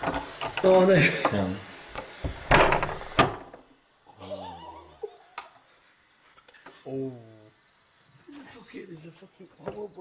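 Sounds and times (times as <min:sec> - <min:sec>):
door bolt scraping: 0:02.4 - 0:03.4.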